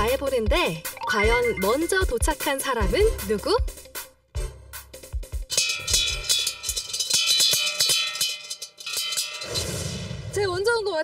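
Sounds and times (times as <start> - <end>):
metal bell clanging: 5.5 - 9.7.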